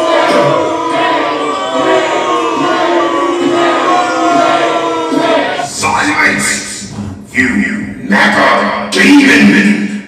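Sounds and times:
voices chanting long held notes: 0.0 - 5.8
music: 0.0 - 5.9.

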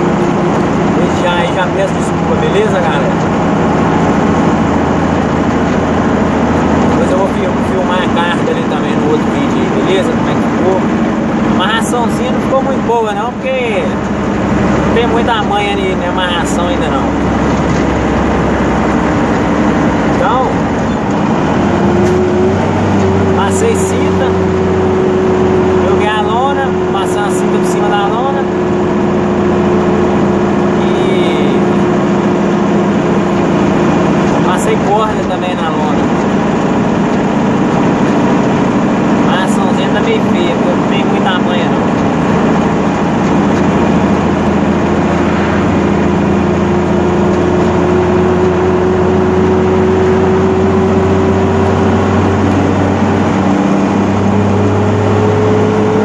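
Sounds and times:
diesel truck engine running: 0.0 - 56.0.

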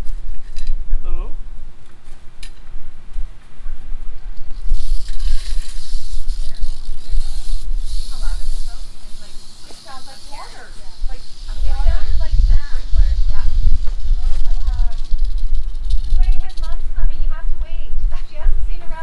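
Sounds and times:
rattlesnake rattling its tail: 0.0 - 19.0.

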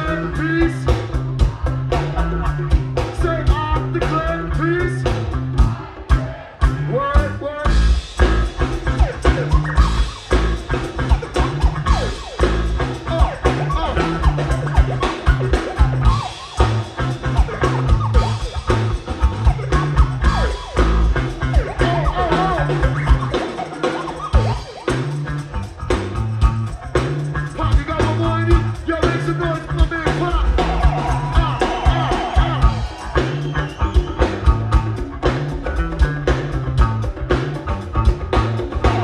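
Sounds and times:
conga drums: 0.0 - 39.0
live band music: 0.0 - 39.0.

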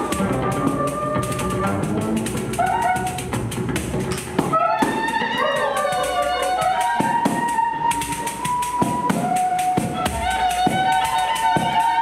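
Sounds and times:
violin long note: 0.0 - 3.2
hand percussion strikes: 0.0 - 12.0.

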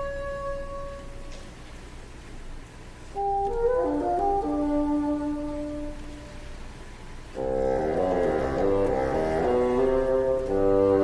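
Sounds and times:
solo bassoon: 0.0 - 1.6, 3.2 - 6.7, 7.3 - 11.0.

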